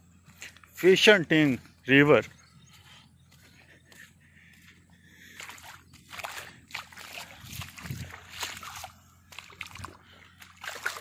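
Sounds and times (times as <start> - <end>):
footsteps squelching in wet mud: 0.0 - 11.0.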